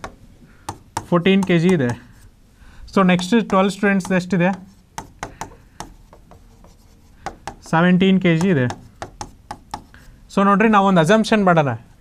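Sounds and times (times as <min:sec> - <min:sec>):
stylus tapping and scratching on board: 0:00.0 - 0:02.3, 0:02.9 - 0:10.0.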